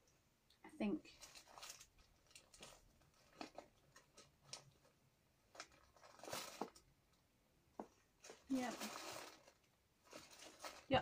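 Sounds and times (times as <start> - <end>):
paper and seed packets rustling: 1.1 - 6.9, 8.2 - 11.0.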